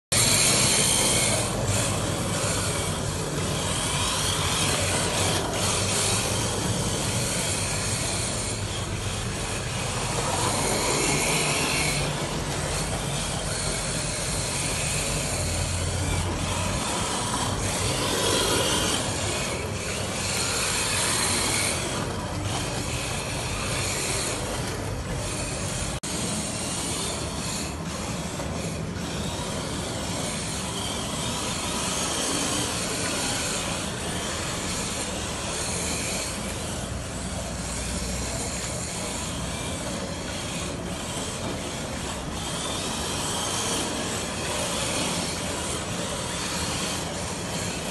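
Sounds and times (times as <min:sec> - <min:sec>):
electric motors whining: 0:00.1 - 0:47.9.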